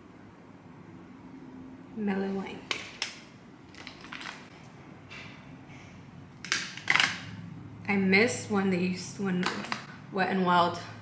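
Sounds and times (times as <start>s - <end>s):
containers clattering: 3.7s - 4.6s, 6.4s - 7.3s
makeup containers tapping: 9.3s - 9.9s.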